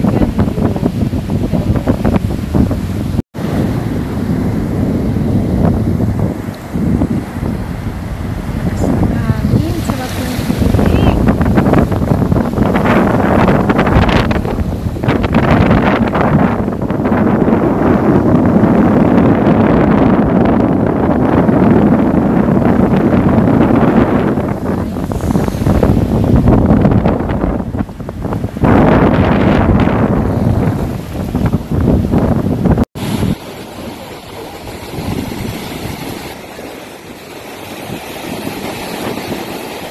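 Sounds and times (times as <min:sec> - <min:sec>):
surf breaking: 0:00.0 - 0:39.9
wind buffeting microphone: 0:00.0 - 0:39.9.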